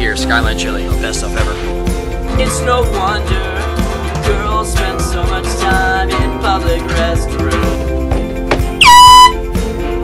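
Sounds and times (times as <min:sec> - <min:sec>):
air horn honk: 0:08.8 - 0:09.4.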